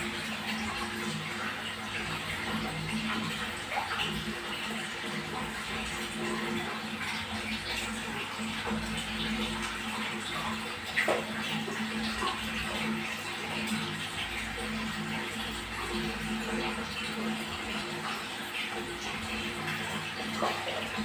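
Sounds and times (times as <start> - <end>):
water splashing and sloshing: 0.0 - 21.0.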